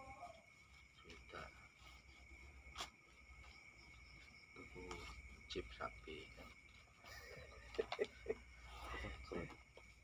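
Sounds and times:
man laughing: 0:07.0 - 0:08.5.

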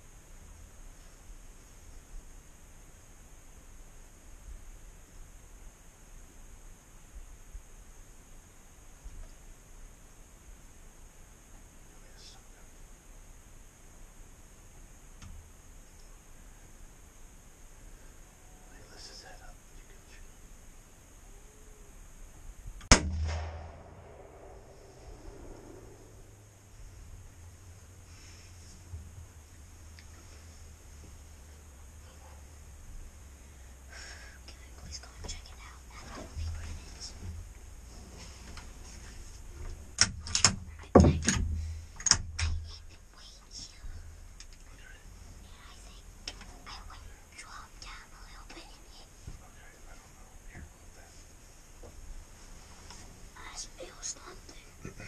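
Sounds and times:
low whispering: 0:11.9 - 0:12.8, 0:17.8 - 0:20.4, 0:23.7 - 0:28.6, 0:33.4 - 0:37.3, 0:42.4 - 0:51.1, 0:53.3 - 0:55.0
rifle shot: 0:22.8 - 0:25.3
rifle handling clicks and knocks: 0:40.0 - 0:42.4.

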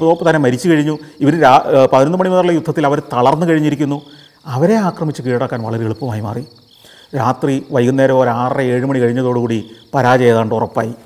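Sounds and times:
crickets chirping: 0:00.0 - 0:11.0
man talking: 0:00.0 - 0:11.0.

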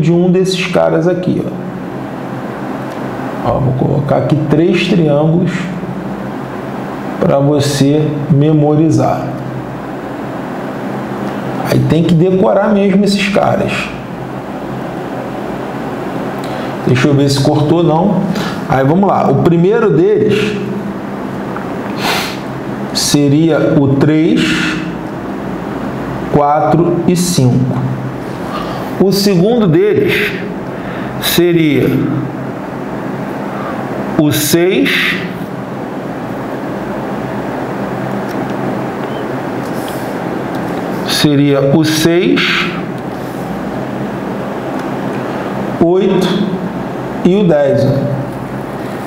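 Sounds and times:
room background hiss: 0:00.0 - 0:49.0
even hiss: 0:21.9 - 0:25.0.

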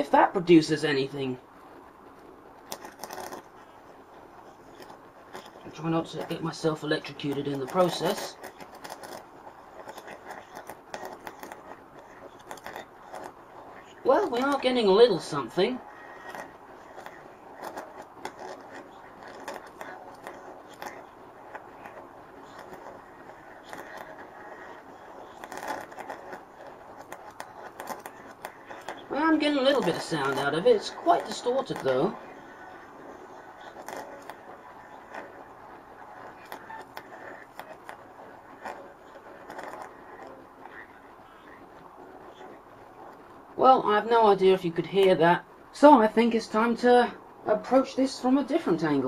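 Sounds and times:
electric arc crackling and hissing: 0:00.0 - 0:49.0.

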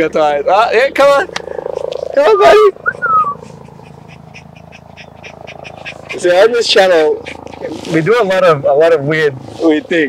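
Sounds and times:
dog panting: 0:03.0 - 0:09.8.

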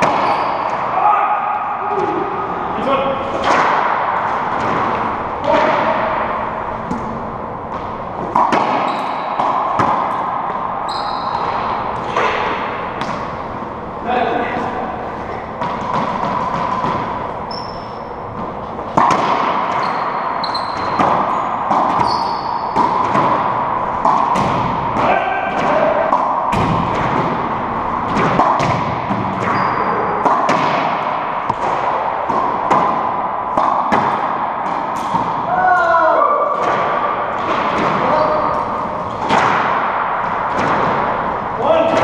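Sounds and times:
shoes squeaking on hardwood floor: 0:10.9 - 0:11.6, 0:19.8 - 0:22.8, 0:29.5 - 0:29.8.

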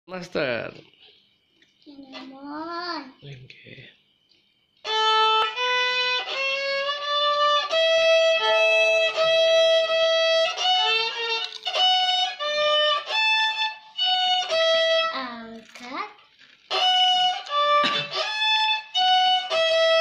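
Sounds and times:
violin melody: 0:04.8 - 0:15.2, 0:16.6 - 0:20.0.

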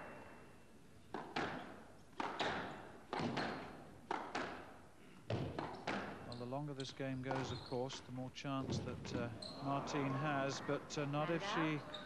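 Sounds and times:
ball hitting rackets and walls: 0:01.1 - 0:06.3, 0:07.2 - 0:07.6.

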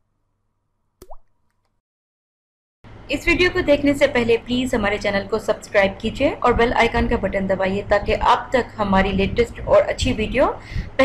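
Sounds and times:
woman speaking: 0:03.1 - 0:11.0.

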